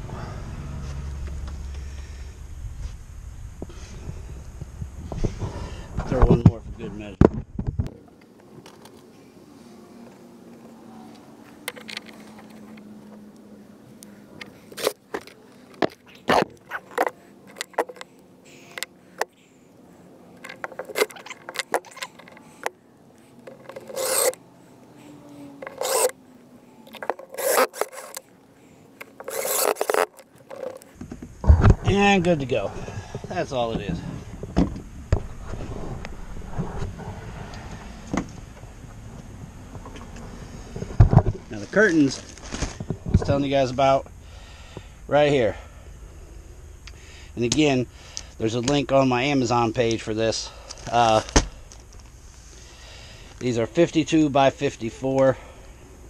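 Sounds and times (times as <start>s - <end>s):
clicks and scraping of screws: 11.6s - 12.8s, 14.4s - 19.4s, 20.4s - 24.4s, 25.6s - 26.2s, 26.8s - 28.3s, 29.0s - 31.0s
cordless drill driving screws: 23.7s - 24.4s, 25.6s - 26.2s, 27.2s - 28.3s, 29.0s - 30.8s.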